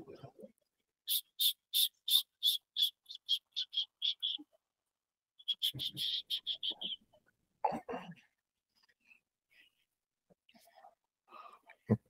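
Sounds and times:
small animal chirping: 0:01.1 - 0:04.4, 0:05.4 - 0:07.0.

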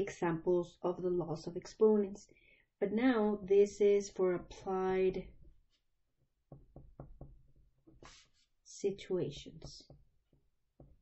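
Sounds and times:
pen tapping on paper: 0:06.5 - 0:08.2, 0:09.6 - 0:11.0.

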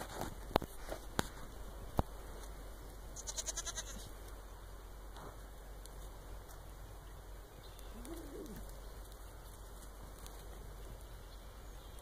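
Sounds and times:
goat bleating: 0:03.2 - 0:04.1.

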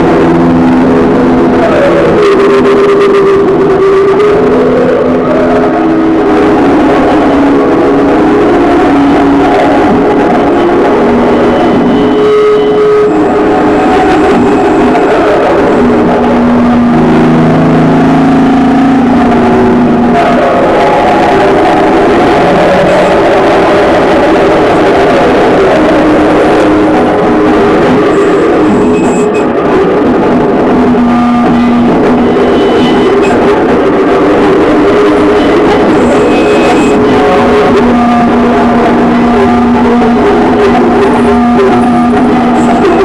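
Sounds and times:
distorted noise music: 0:00.0 - 0:43.0
droning held tones: 0:00.0 - 0:43.0.

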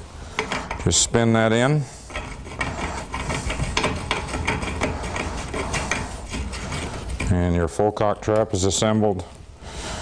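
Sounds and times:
threaded handle clicking and scraping: 0:00.4 - 0:01.0, 0:02.1 - 0:07.5.

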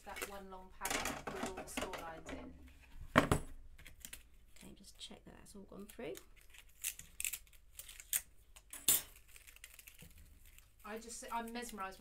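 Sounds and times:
card rustling: 0:05.8 - 0:12.0.

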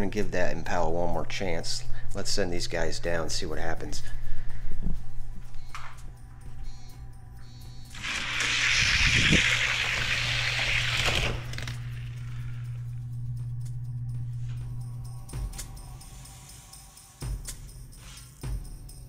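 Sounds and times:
background music: 0:00.0 - 0:19.0
toy cars rolling on plastic track: 0:07.9 - 0:12.3.

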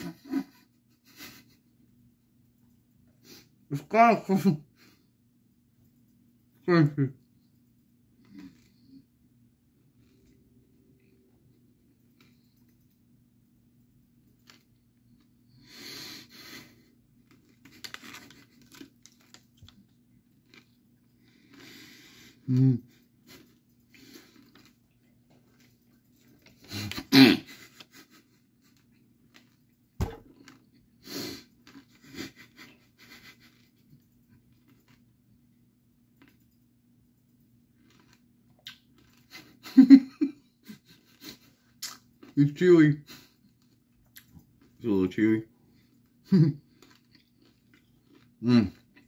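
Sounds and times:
chewing gummy candy: 0:08.1 - 0:09.1, 0:17.1 - 0:39.6, 0:45.7 - 0:49.0
candy wrapper crackling: 0:17.2 - 0:20.9
wet mouth smacks and clicks: 0:38.6 - 0:38.9, 0:41.8 - 0:42.0.

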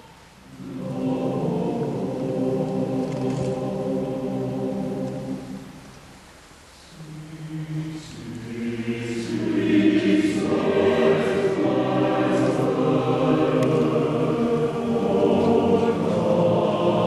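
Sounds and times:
men's choir singing: 0:00.5 - 0:05.7, 0:06.9 - 0:17.0.

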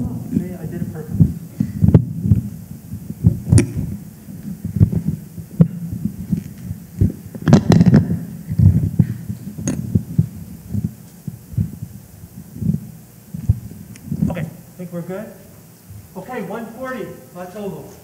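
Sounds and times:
microphone handling thumps and rubbing: 0:00.0 - 0:14.6, 0:15.8 - 0:16.2
sharp knocks on microphone: 0:07.4 - 0:08.2.

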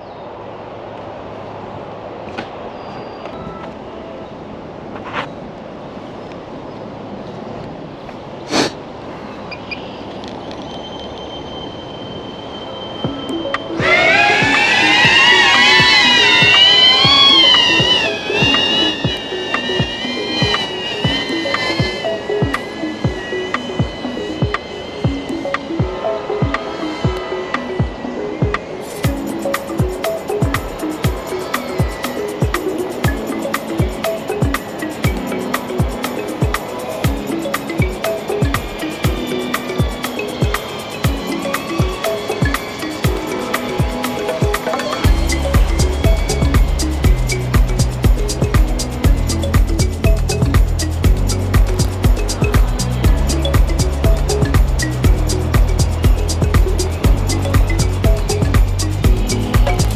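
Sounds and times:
outdoor hiss: 0:08.4 - 0:09.4
drone propellers whining: 0:09.3 - 0:59.9
music with steady beat: 0:13.0 - 0:59.9.

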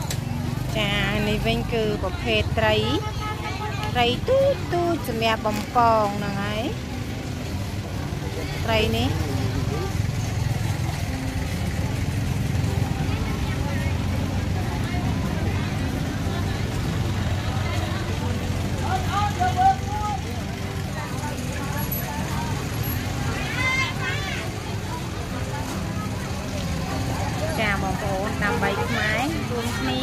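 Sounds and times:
chatter of vendors and shoppers: 0:00.0 - 0:30.0.

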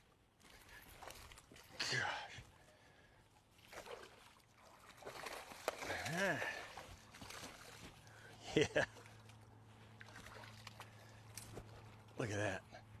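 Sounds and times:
water splashing: 0:03.5 - 0:12.2.

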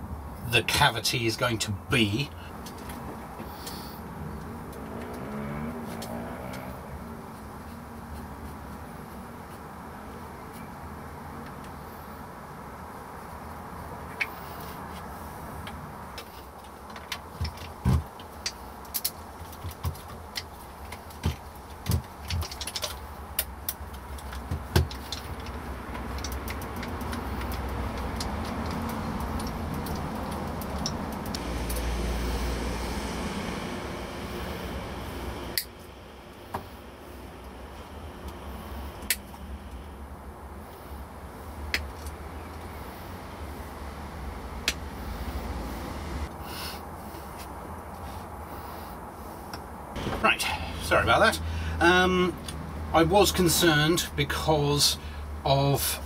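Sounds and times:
steady low rumble: 0:27.0 - 0:46.4.

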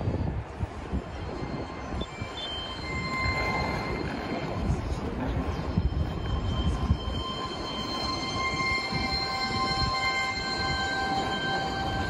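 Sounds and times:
steady noisy background: 0:00.0 - 0:12.0
faint high-pitched squeals: 0:00.9 - 0:12.0.

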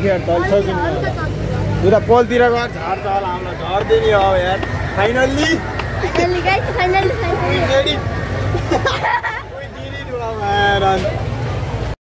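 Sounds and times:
steady low rumble: 0:01.0 - 0:10.2.

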